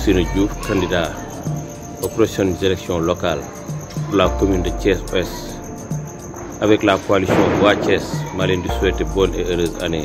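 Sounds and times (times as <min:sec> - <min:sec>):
man speaking: 0:00.0 - 0:05.7, 0:06.6 - 0:10.0
crickets chirring: 0:00.0 - 0:10.0.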